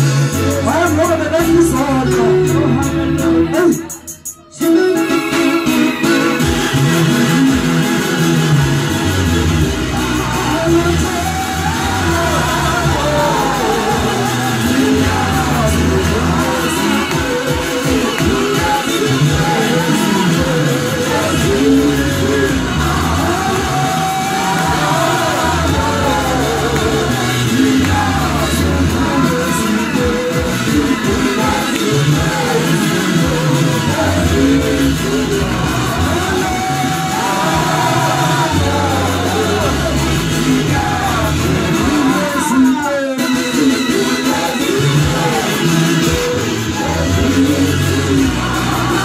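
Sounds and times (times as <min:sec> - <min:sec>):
amplified backing music heavy bass: 0:00.0 - 0:49.0
singers singing into microphones: 0:00.0 - 0:49.0.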